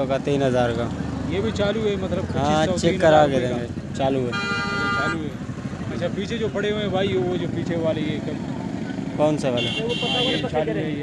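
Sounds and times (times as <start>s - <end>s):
men talking: 0.0s - 11.0s
vehicle horn: 4.3s - 5.3s, 9.6s - 10.5s.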